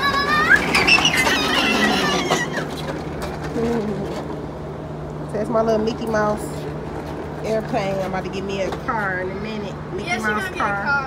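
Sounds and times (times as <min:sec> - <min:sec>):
small child squealing: 0:00.0 - 0:02.8.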